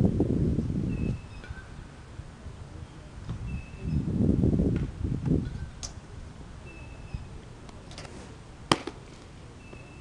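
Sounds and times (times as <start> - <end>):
baseball smacking into mitt: 8.7 - 9.0.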